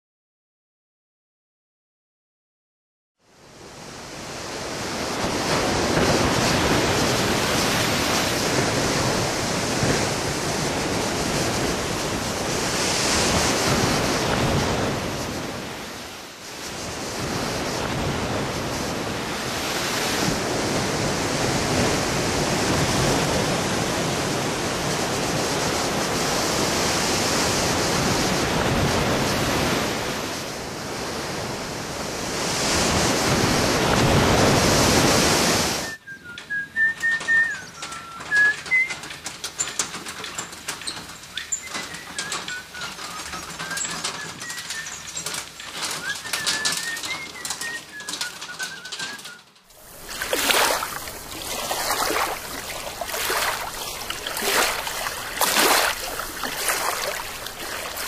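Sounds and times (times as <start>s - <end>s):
surf breaking on beach: 3.6s - 35.8s, 49.7s - 58.0s.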